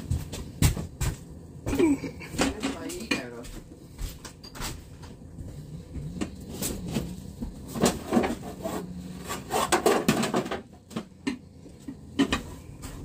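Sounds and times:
dishes and containers clattering: 1.7 - 3.3, 4.2 - 5.1, 6.2 - 13.0.

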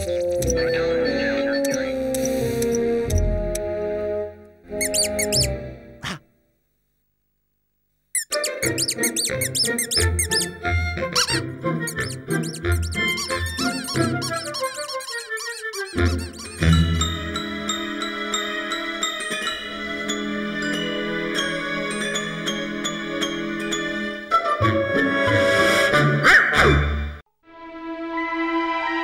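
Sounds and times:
cartoon soundtrack music: 0.0 - 6.2, 8.2 - 29.0
squeaky pitch glides: 4.7 - 6.2, 8.2 - 17.3.

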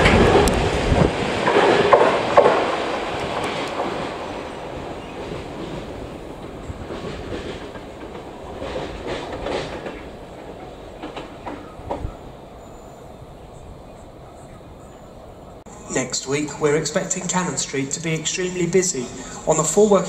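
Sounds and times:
train wheels clacking on track: 0.0 - 12.2.

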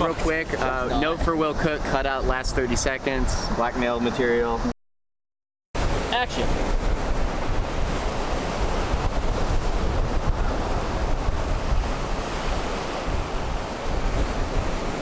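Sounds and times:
ocean surf breaking on sand: 0.0 - 4.6, 5.8 - 15.0
wind buffeting microphone: 5.8 - 15.0.

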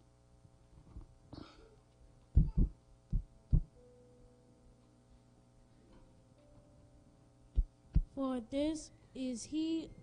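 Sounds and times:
faint steady hum: 0.0 - 10.0
dull heavy thumps: 2.4 - 3.8.

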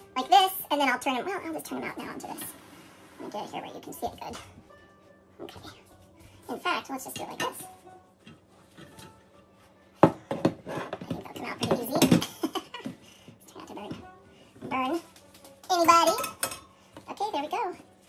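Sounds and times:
ceramic dish and metal rack rattling: 15.8 - 16.7.

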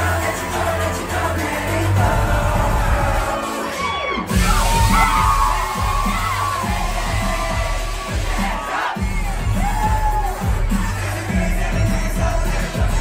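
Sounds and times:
crowd cheering: 0.0 - 13.0
dance-pop music with heavy bass: 0.0 - 13.0.

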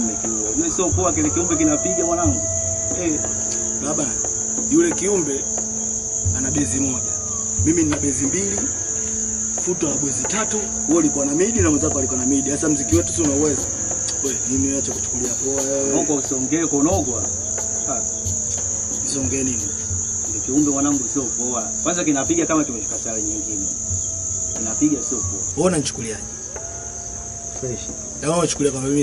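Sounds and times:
crickets chirring: 0.0 - 29.0.

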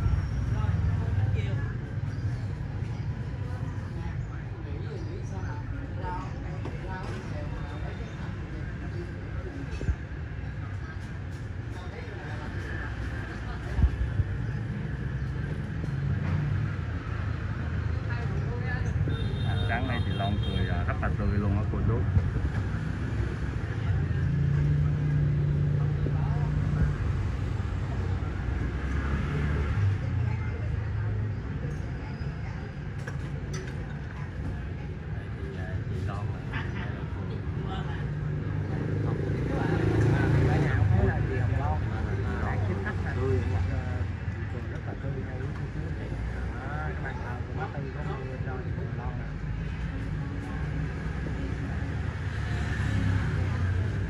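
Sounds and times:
people talking indistinctly: 0.0 - 54.0.

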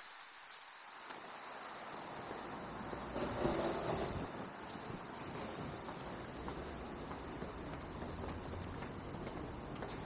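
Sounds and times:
street traffic: 1.9 - 10.0.

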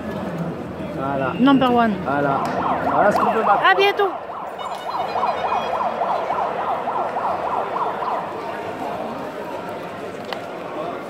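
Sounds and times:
siren yelping: 2.2 - 9.2.

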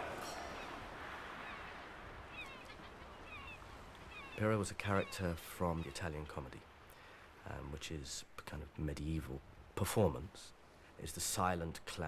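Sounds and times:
gulls calling: 0.0 - 6.5
soft hiss: 0.0 - 12.0.

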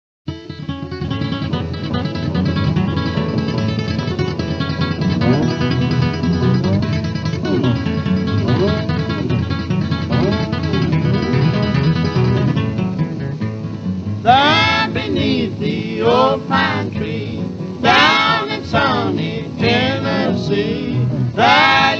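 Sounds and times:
country guitars with sliding notes: 0.3 - 21.9
man singing: 14.3 - 21.9.

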